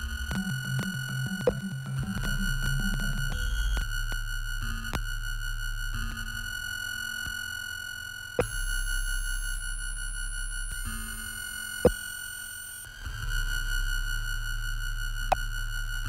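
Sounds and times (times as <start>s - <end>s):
steady pure electronic tones: 0.0s - 7.2s
low electronic drone: 0.0s - 7.3s.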